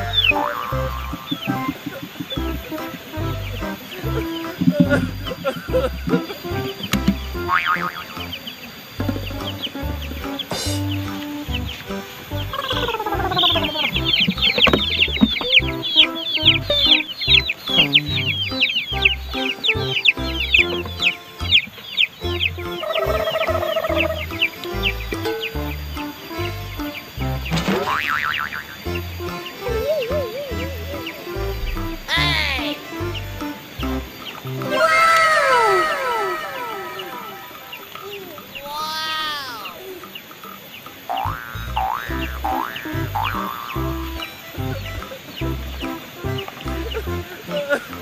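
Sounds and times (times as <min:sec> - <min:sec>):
chicks peeping: 0:00.0 - 0:48.0
background music with bass beat: 0:09.0 - 0:21.7.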